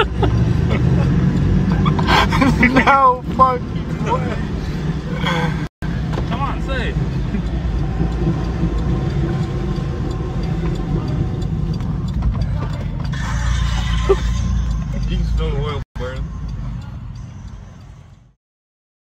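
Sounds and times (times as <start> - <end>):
car interior rumble: 0.0 - 18.3.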